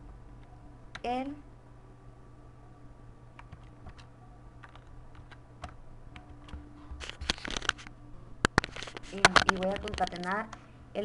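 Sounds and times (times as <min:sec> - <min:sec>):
computer keyboard typing: 0:03.4 - 0:07.8, 0:08.5 - 0:10.4.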